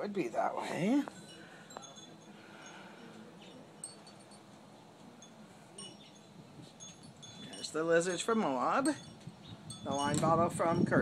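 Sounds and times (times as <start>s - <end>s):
metal wind chimes tinkling: 0.0s - 11.0s.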